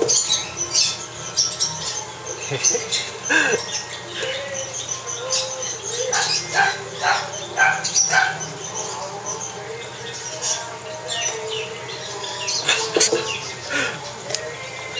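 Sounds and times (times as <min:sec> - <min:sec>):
parakeet chick begging calls: 0:00.0 - 0:13.9.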